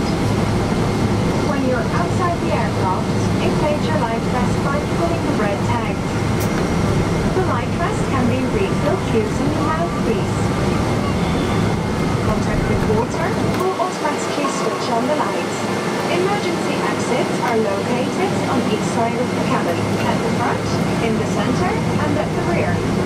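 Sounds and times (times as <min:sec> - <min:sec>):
airplane cabin hum: 0:00.0 - 0:23.0
passenger chatter: 0:00.0 - 0:23.0.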